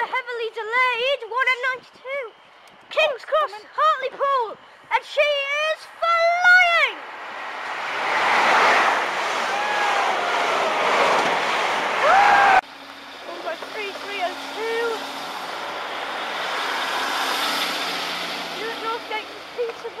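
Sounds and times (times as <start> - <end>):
high speed train passing: 3.8 - 20.0
diesel railcar engine hum: 7.0 - 20.0.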